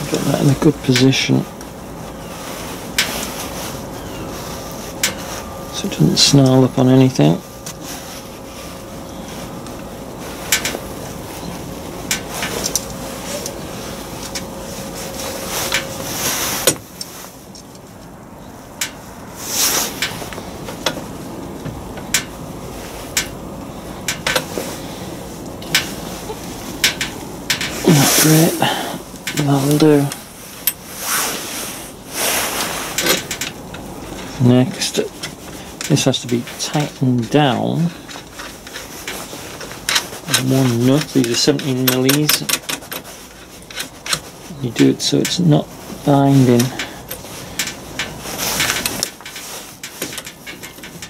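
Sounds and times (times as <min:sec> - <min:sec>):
steady low hum: 0:00.0 - 0:51.0
small metal parts clinking: 0:10.4 - 0:18.1, 0:32.9 - 0:51.0.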